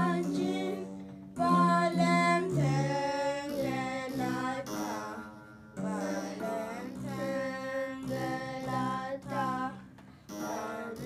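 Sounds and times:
boys chanting a hymn: 0.0 - 11.0
low plucked strings: 0.0 - 11.0.

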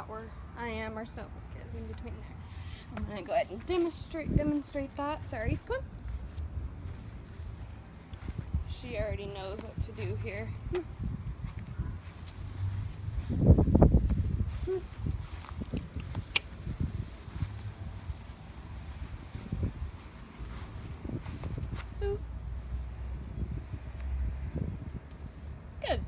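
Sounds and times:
low rumble: 5.1 - 25.5.

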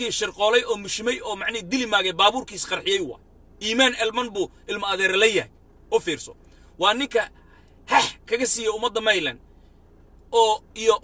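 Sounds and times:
man speaking: 0.0 - 9.4, 10.3 - 11.0.

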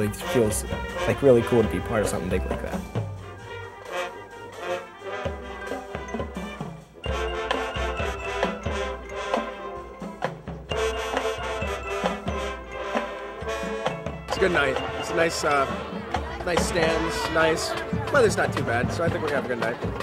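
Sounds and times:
brass instruments playing: 0.0 - 20.0
drum beat: 0.0 - 20.0.

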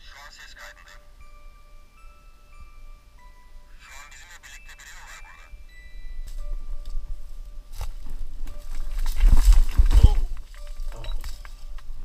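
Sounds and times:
faint steady tone: 0.0 - 9.2
wind rumble: 5.6 - 12.0
microphone handling noise: 6.3 - 12.0
footsteps on loose stones: 7.7 - 12.0.

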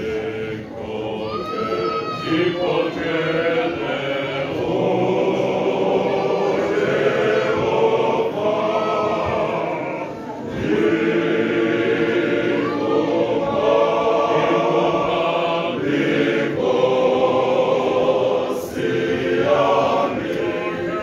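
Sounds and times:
male choir singing in harmony: 0.0 - 21.0.

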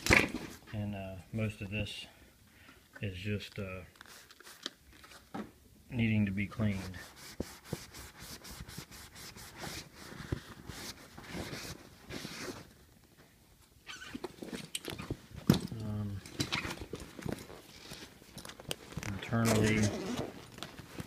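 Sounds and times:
fabric rustling and rubbing: 6.6 - 12.9, 16.6 - 21.0.

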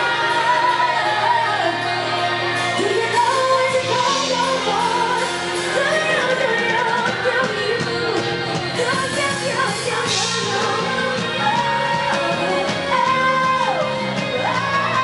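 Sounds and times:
drums: 0.0 - 15.0
electric guitar: 0.0 - 15.0
woman singing into a microphone: 0.0 - 15.0.

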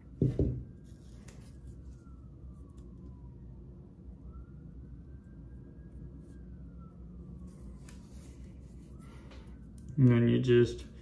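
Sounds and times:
low steady hum: 0.0 - 11.0
siren wailing: 0.0 - 11.0.

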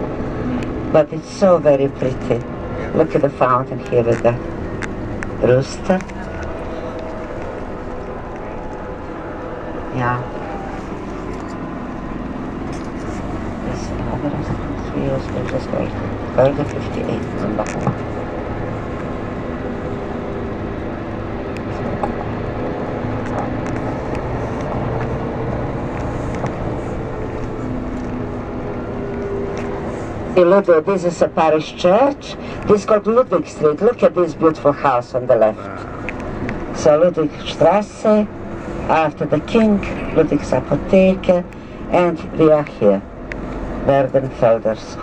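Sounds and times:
bus engine and road noise: 0.0 - 45.0.

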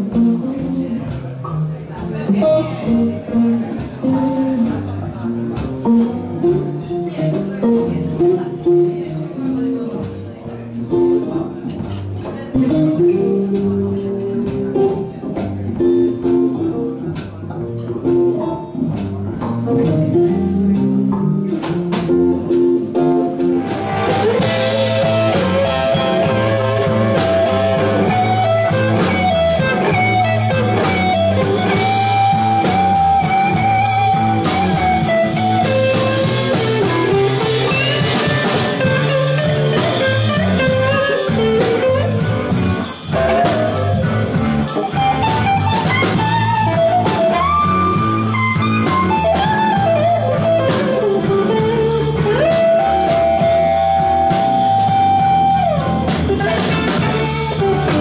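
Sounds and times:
bass line: 0.0 - 58.0
drum kit: 0.0 - 58.0
electric guitar solo: 22.1 - 58.0.

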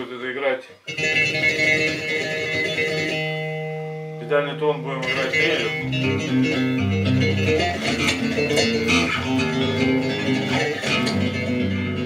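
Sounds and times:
electric bass arpeggios: 0.9 - 12.0.

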